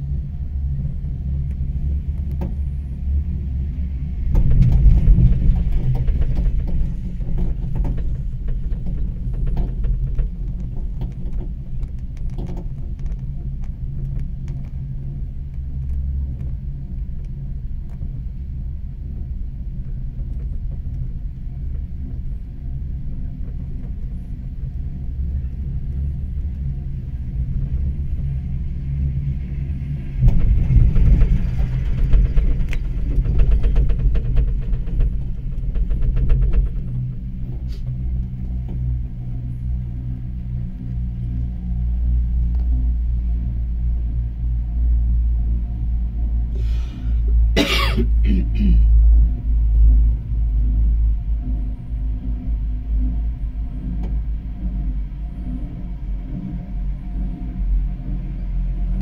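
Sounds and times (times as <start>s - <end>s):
wind on microphone: 0.0s - 47.5s
fast rattling clatter: 4.2s - 13.9s, 29.8s - 38.7s
chairlift rumble: 19.0s - 42.1s.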